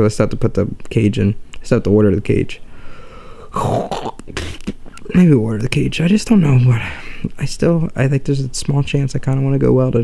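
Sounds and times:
man's breathy throat noise: 2.8 - 4.8.

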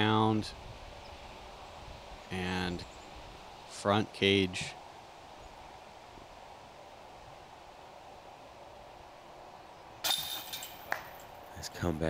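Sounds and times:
metallic clank: 10.0 - 11.3
disc hitting basket chains: 10.0 - 11.5.

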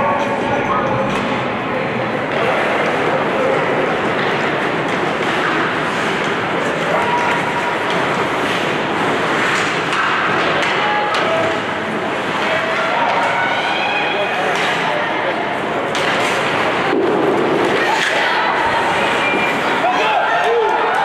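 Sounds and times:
spectators chatter echoing: 0.0 - 21.0
hockey game thuds: 2.1 - 13.8, 14.4 - 21.0.

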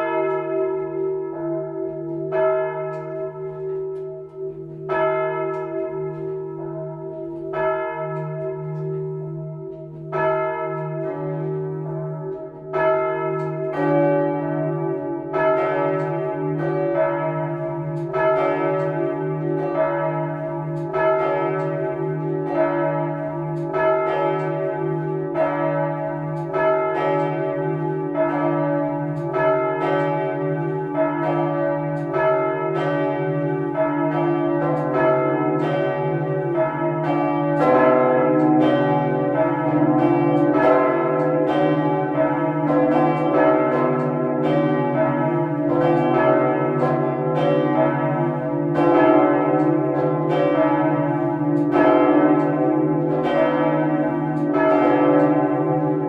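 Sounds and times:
church bells ringing in a peal: 0.0 - 56.0.

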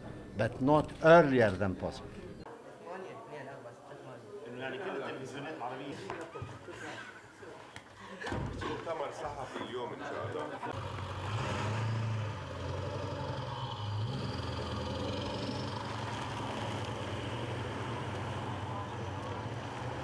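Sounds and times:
low engine drone: 10.7 - 19.8.

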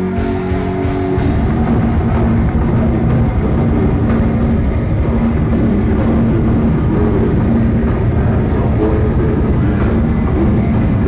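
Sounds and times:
distorted electric guitars: 0.0 - 11.0
fast dense drumming: 0.0 - 11.0.

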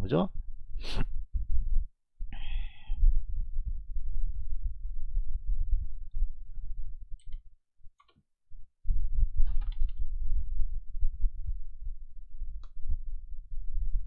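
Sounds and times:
low rumbling and thudding on microphone: 0.3 - 1.9, 3.0 - 7.2, 8.9 - 14.0.

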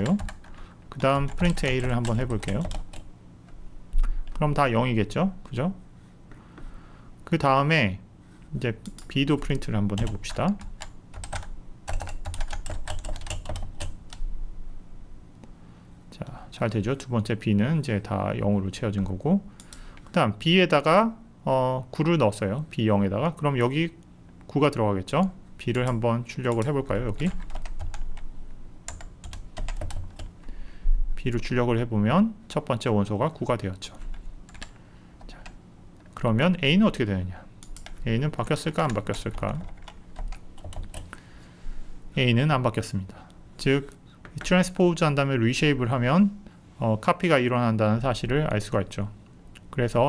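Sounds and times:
computer keyboard keystrokes: 0.0 - 0.6, 1.2 - 3.1, 10.0 - 14.2, 25.8 - 28.2, 28.9 - 30.3, 34.0 - 34.8, 37.6 - 38.0, 38.8 - 41.1
keyboard typing clicks: 34.5 - 34.7, 37.6 - 38.0.

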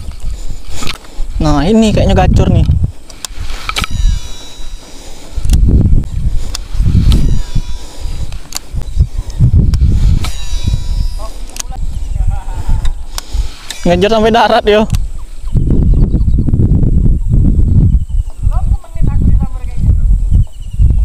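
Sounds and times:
low rumbles on microphone: 0.0 - 4.4, 5.3 - 13.5, 14.9 - 21.0
fishing reel whining: 3.1 - 12.1, 13.1 - 14.1.

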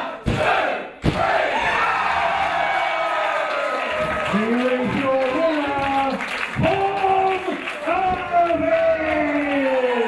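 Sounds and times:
crowd shouting: 0.0 - 4.2.

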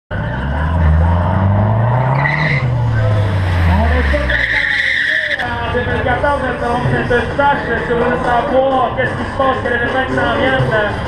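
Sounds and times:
car engine revving: 0.1 - 9.7
tyre squeal: 0.2 - 5.5.

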